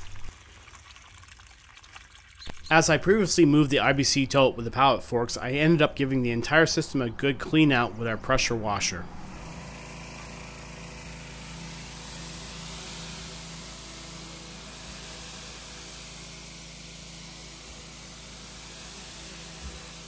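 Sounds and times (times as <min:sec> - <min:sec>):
pressure washer motor hum: 0:09.1 - 0:20.0
water spraying hiss: 0:10.5 - 0:20.0.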